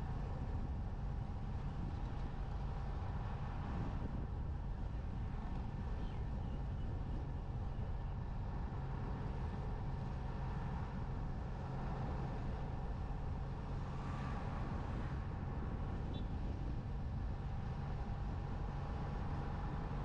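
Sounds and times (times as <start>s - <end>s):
road and wind noise: 0.0s - 20.0s
vehicle engine humming: 0.0s - 20.0s.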